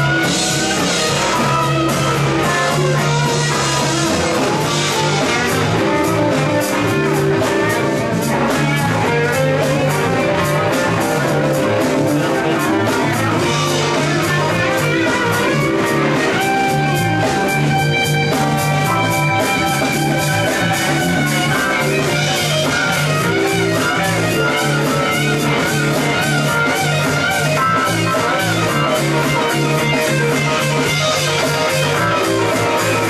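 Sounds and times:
drum kit beat: 0:00.0 - 0:33.0
electric bass: 0:00.0 - 0:33.0
electric guitars: 0:00.0 - 0:33.0
keyboard: 0:00.0 - 0:33.0.

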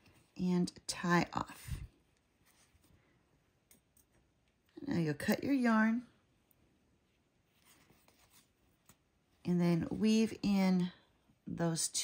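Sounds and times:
soft yarn rustles: 0:00.0 - 0:12.0.

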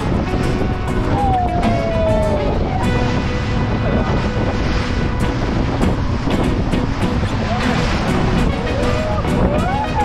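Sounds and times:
water rushing past boat: 0:00.0 - 0:10.0
wind buffeting microphone: 0:00.0 - 0:10.0.

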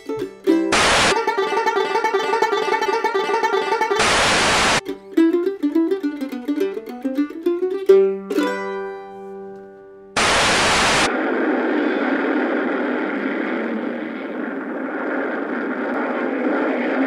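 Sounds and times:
mandolin notes ringing: 0:00.0 - 0:04.1, 0:04.8 - 0:10.1
old film music: 0:00.0 - 0:10.1
loud burst of static noise: 0:00.7 - 0:01.2, 0:04.0 - 0:04.8, 0:10.2 - 0:17.0
steady wash of noise: 0:10.2 - 0:17.0.

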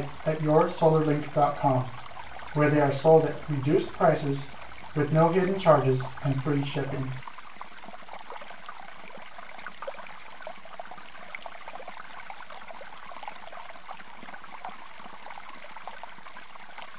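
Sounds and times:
pool water lapping and splashing: 0:00.0 - 0:16.9.

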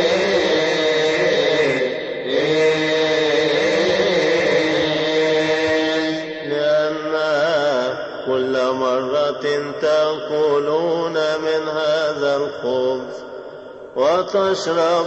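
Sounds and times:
man chanting a hymn: 0:00.0 - 0:15.0.

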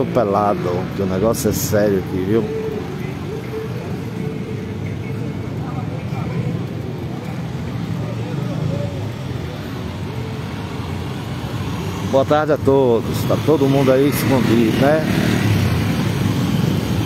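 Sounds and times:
street traffic: 0:00.0 - 0:17.0
faint voices of people: 0:02.1 - 0:11.3.

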